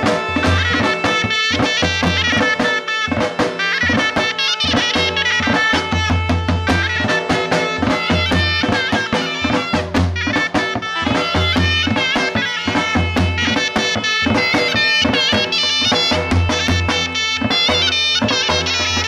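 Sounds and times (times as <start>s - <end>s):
reed wind instrument melody: 0.0s - 19.0s.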